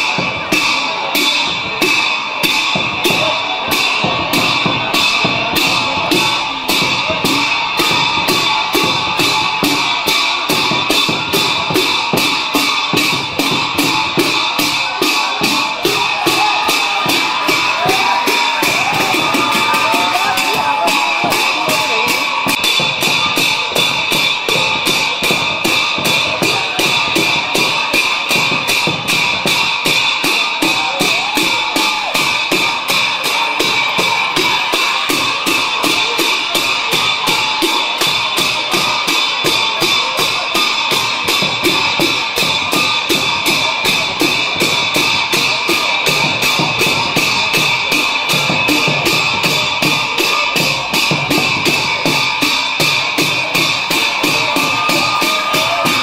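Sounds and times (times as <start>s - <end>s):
cymbals ringing: 0.0s - 56.0s
drums playing fast beat: 0.0s - 56.0s.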